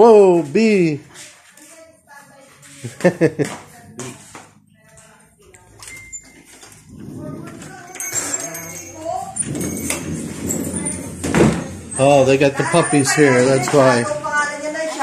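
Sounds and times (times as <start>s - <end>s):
indistinct voices: 3.8s - 15.0s.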